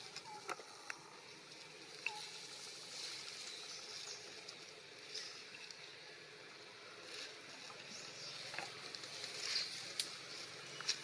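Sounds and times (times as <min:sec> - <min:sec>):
dry leaves rustling and ticking: 0:00.0 - 0:11.0.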